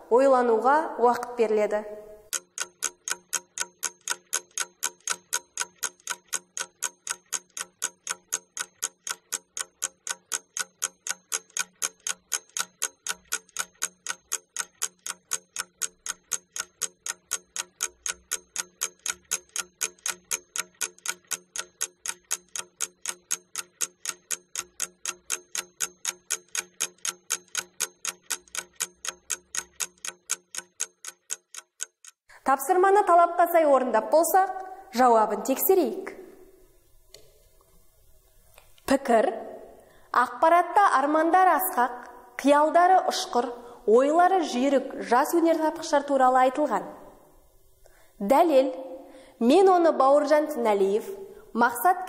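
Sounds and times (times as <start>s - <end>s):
clock ticking: 2.2s - 32.4s, 41.0s - 42.4s, 43.1s - 48.4s.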